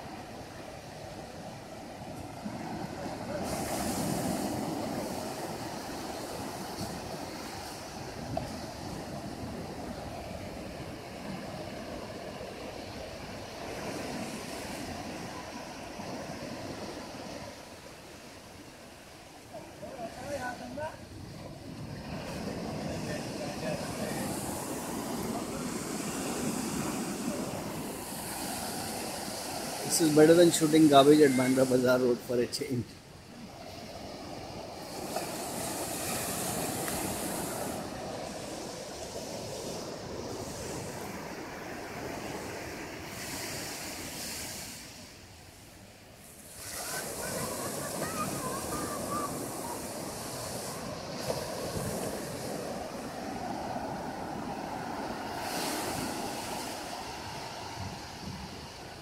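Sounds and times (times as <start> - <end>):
small waves washing on sandy shore: 0.0 - 59.0
faint voices: 46.7 - 50.4.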